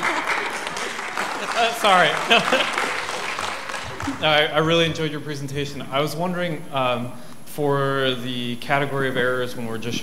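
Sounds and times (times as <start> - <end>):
audience applauding: 0.0 - 4.9
person laughing: 2.2 - 2.9.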